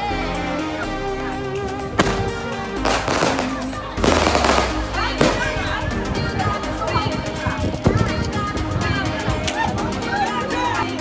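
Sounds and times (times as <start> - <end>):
background music: 0.0 - 11.0
firecrackers crackling: 2.0 - 5.7.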